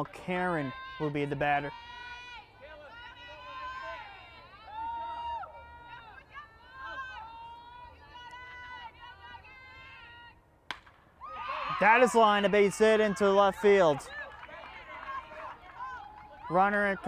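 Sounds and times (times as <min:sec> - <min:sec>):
young voices chanting and cheering: 0:00.3 - 0:10.4, 0:11.2 - 0:17.0
bat cracking against ball: 0:10.6 - 0:11.1.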